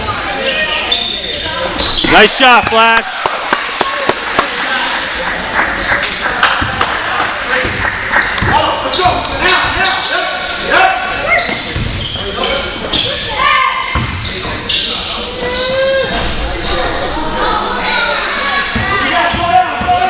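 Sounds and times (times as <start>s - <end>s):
sneakers squeaking: 0.0s - 2.8s, 7.4s - 20.0s
chatter and shouts of people: 0.0s - 20.0s.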